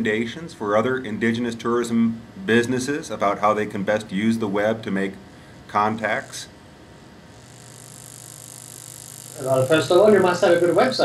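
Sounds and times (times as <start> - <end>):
high hiss: 7.4 - 11.0.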